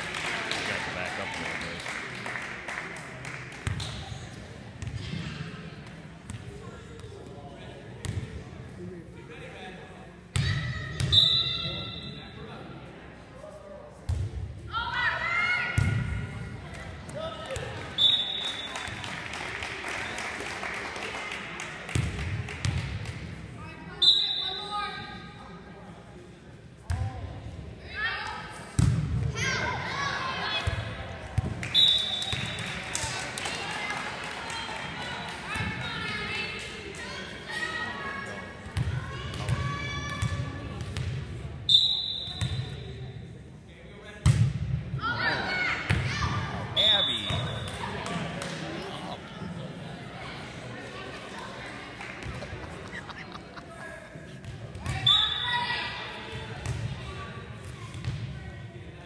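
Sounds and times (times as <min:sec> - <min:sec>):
spectators chattering and cheering: 0:00.0 - 0:44.2, 0:44.8 - 0:59.0
referee's whistle blasts: 0:11.0 - 0:12.2, 0:18.0 - 0:18.8, 0:24.0 - 0:24.7, 0:31.7 - 0:32.6, 0:41.7 - 0:42.7, 0:46.7 - 0:47.8, 0:55.0 - 0:55.5.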